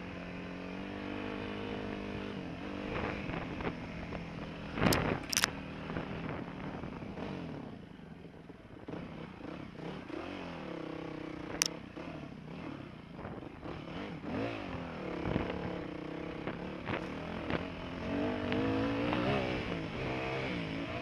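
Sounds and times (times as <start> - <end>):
sharp click: 4.9 - 5.5
motorbike engine revving: 13.6 - 21.0.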